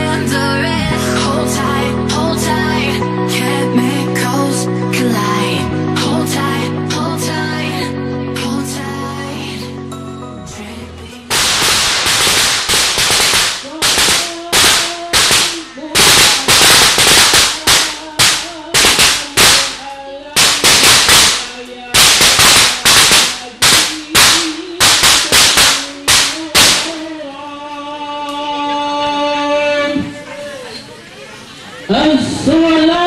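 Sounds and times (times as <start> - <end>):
loud sharp cracks: 11.3 - 27.2.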